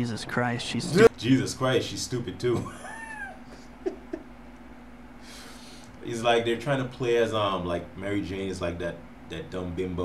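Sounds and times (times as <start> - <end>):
man's stifled laughter: 2.6 - 4.3.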